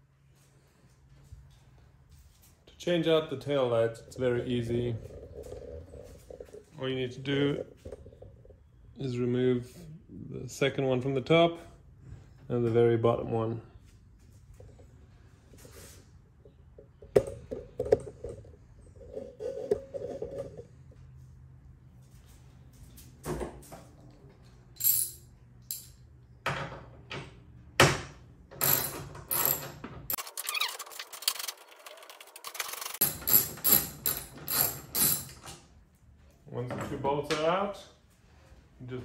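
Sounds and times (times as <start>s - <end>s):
metal clinks: 24.8s - 26.0s.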